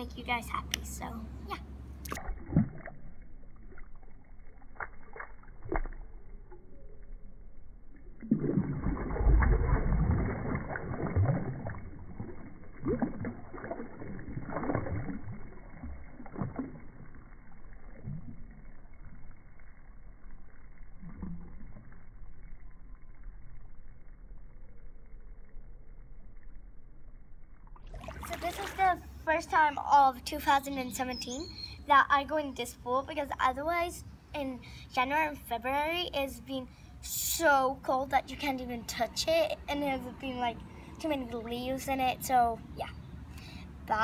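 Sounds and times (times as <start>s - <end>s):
pool water sloshing and splashing: 1.9s - 22.9s, 27.8s - 29.8s.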